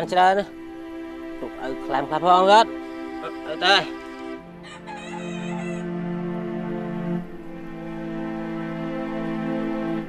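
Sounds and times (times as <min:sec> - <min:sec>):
rooster crowing: 0:04.5 - 0:06.0.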